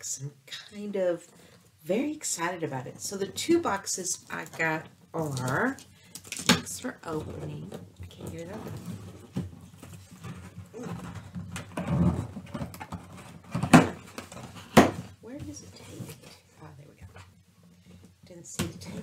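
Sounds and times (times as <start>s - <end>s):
cardboard scraping and rustling: 7.1s - 16.4s.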